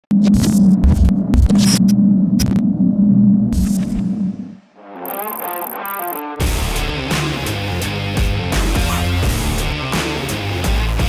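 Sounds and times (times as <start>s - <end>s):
static crackles: 5.1s - 6.2s.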